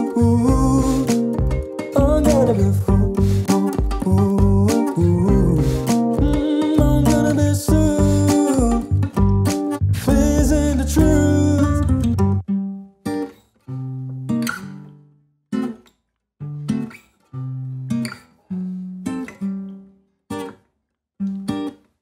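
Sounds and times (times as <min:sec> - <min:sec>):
band playing: 0:00.0 - 0:12.4
acoustic guitar strums: 0:00.0 - 0:20.6, 0:21.2 - 0:22.0.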